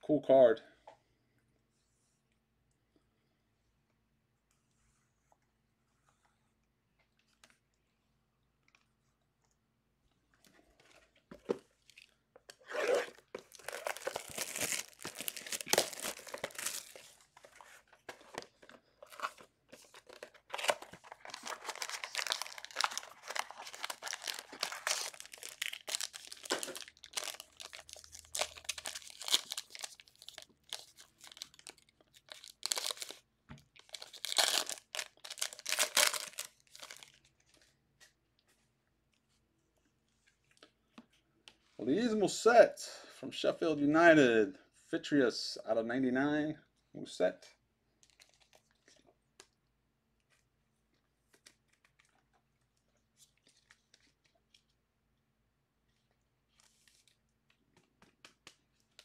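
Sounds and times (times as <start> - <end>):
plastic wrap crinkling: 11.4 - 37.7.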